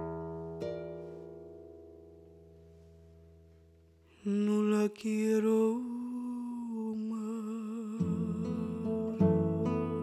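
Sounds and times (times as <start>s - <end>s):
acoustic guitar chord ringing: 0.0s - 4.4s, 7.7s - 10.0s.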